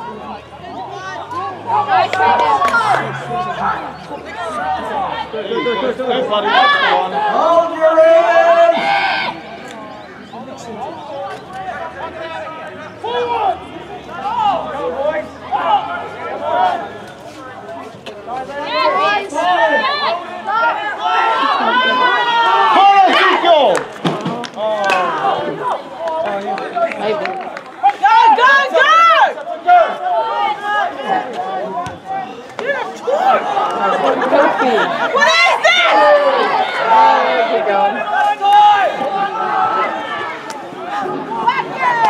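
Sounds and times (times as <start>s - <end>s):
people shouting and calling out: 0.0s - 42.0s.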